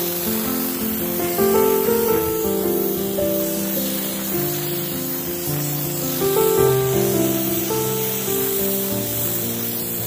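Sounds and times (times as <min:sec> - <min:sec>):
compressed air sprayer hissing: 0:00.0 - 0:10.0.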